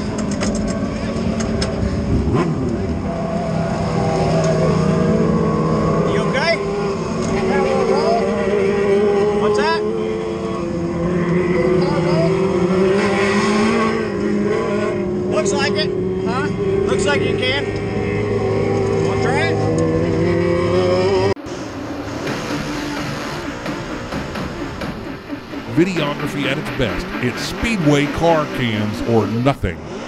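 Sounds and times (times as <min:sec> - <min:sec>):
race cars revving past: 0:00.0 - 0:24.1
quieter race car sounds: 0:00.0 - 0:30.0.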